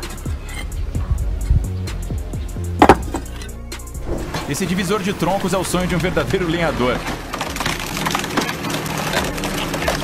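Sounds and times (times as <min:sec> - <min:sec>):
log cracking and splintering: 0:05.4 - 0:10.0.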